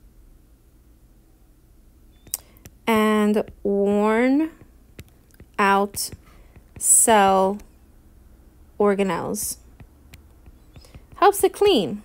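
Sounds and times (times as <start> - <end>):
room hum: 0.0 - 12.0
sharp click: 2.2 - 2.8
woman speaking: 2.9 - 4.6, 5.6 - 6.2, 6.8 - 7.6, 8.8 - 9.6, 11.2 - 12.0.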